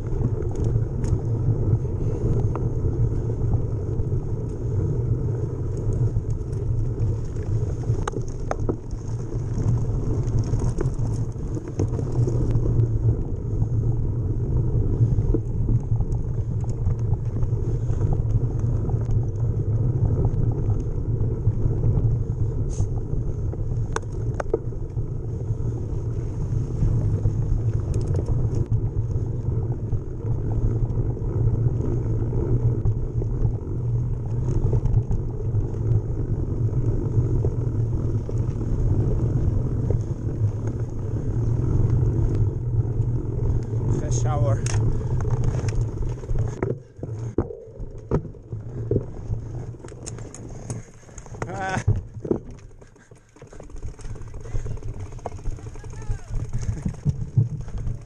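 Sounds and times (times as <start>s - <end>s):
bike rumbling on dirt trail: 0.0s - 58.0s
knocks and rattles of bike: 0.0s - 58.0s.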